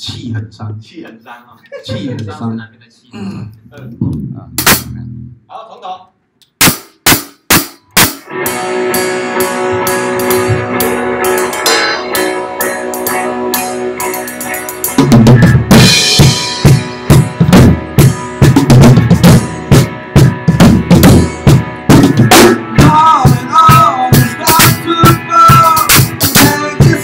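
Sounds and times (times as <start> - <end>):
drum kit playing: 4.0 - 5.3, 6.4 - 27.0
backing song: 7.5 - 27.0.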